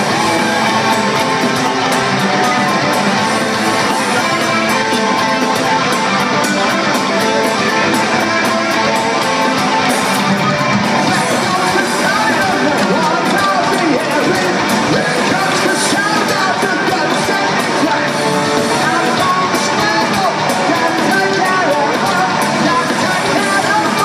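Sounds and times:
drums: 0:00.0 - 0:24.0
electric guitars: 0:00.0 - 0:24.0
person singing: 0:00.0 - 0:24.0.

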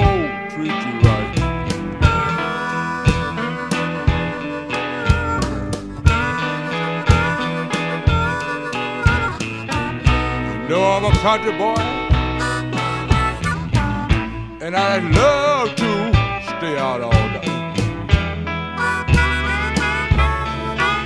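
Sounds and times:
drums keeping steady beat: 0:00.0 - 0:00.4, 0:01.0 - 0:21.0
bending lead guitar line: 0:00.0 - 0:21.0
blues band playing: 0:00.0 - 0:21.0.

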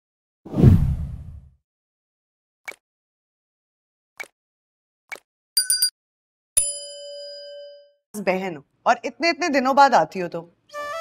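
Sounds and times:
notification bell ding: 0:05.6 - 0:05.9, 0:06.6 - 0:07.9.

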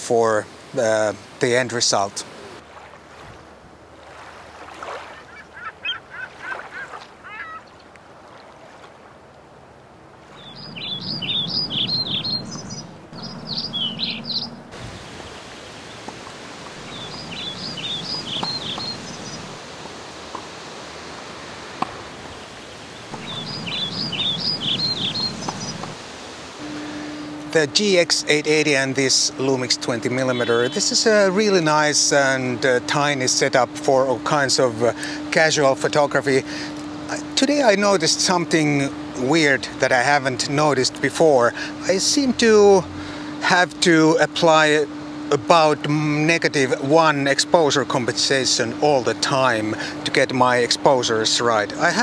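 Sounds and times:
outdoor background noise: 0:00.0 - 0:52.0
songbird chirping: 0:05.0 - 0:08.5, 0:10.3 - 0:19.6, 0:22.0 - 0:26.0, 0:28.7 - 0:31.3.

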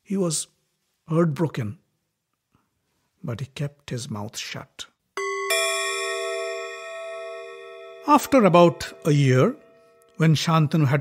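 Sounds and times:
metallic bell chime ringing: 0:05.2 - 0:10.2.

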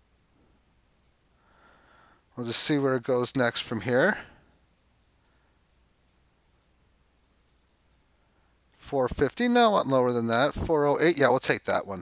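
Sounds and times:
faint computer mouse clicks: 0:00.9 - 0:01.2, 0:04.4 - 0:08.1
person speaking: 0:02.3 - 0:04.7, 0:08.8 - 0:12.0.

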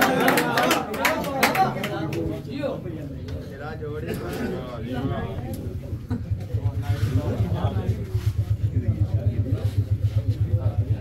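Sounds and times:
crowd murmuring: 0:00.0 - 0:11.0
low pulsing throb: 0:06.5 - 0:11.0.

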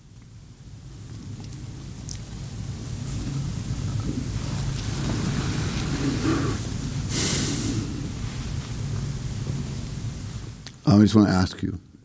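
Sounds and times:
short loud hiss: 0:04.6 - 0:09.0.

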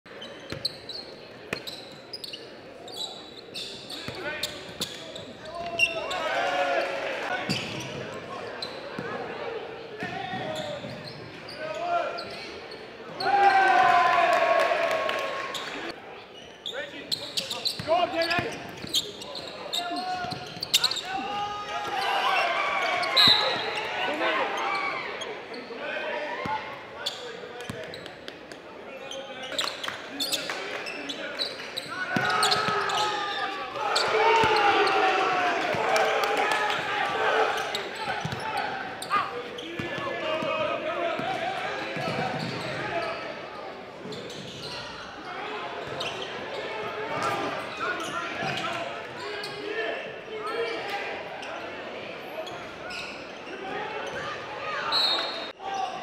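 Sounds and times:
players and spectators shouting: 0:05.5 - 0:07.6, 0:13.1 - 0:15.8, 0:19.7 - 0:26.8, 0:31.9 - 0:43.4.

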